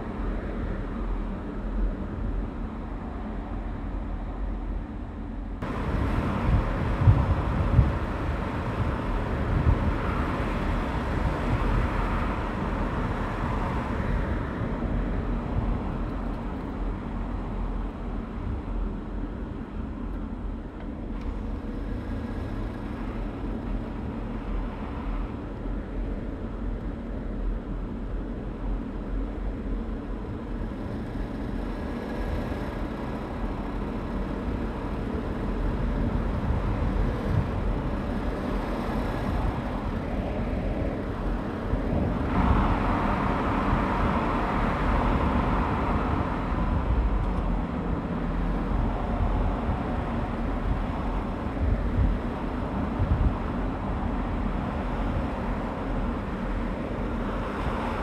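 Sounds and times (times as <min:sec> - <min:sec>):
car engine and tyre noise: 0:00.0 - 0:58.0.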